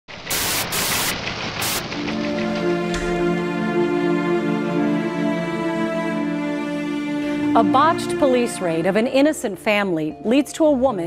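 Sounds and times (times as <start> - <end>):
loud static hiss: 0.1 - 2.0.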